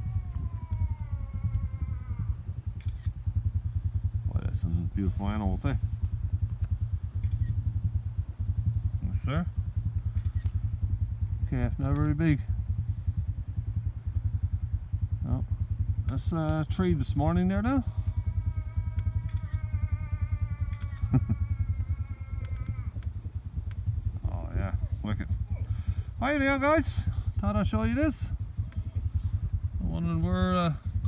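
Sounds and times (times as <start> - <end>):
motorbike engine idling: 0.0 - 31.0.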